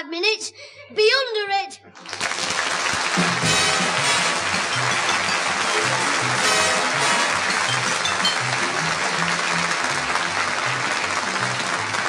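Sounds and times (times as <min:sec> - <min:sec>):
audience applauding: 0:02.0 - 0:12.0
theme music: 0:02.6 - 0:12.0.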